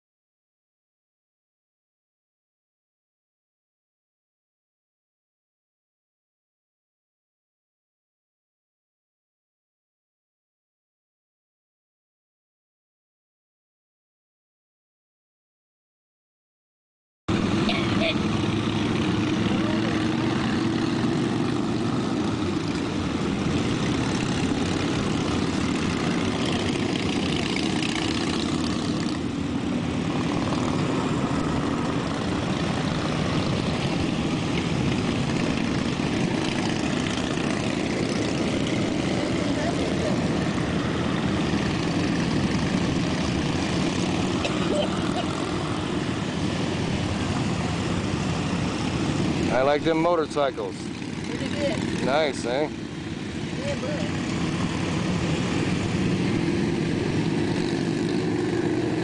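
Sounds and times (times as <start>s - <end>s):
motorcycle engines running: 17.3s - 59.0s.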